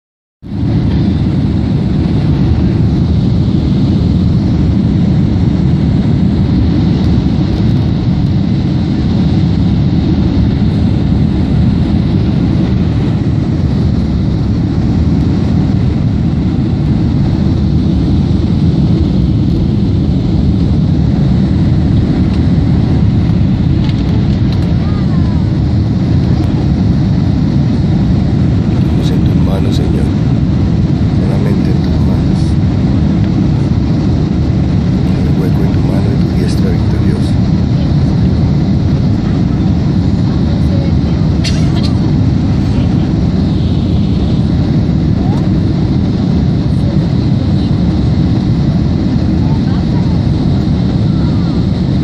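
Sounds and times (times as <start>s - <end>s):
jet engine and airflow roar: 0.4s - 52.0s.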